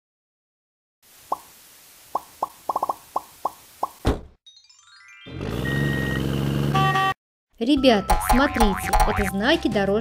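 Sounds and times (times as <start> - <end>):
cartoon pop sound effects: 8.1 - 9.3.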